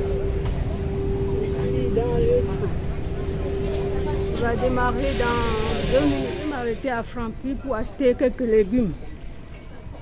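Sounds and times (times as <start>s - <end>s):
faint passenger voices: 0.0s - 10.0s
low train rumble: 0.0s - 10.0s.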